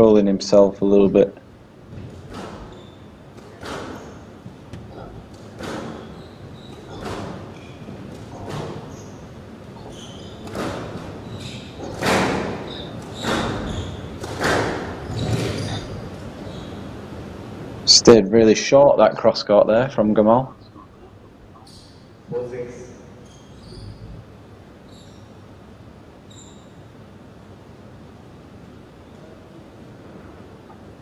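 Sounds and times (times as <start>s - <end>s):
rackets striking ball: 1.9s - 16.9s.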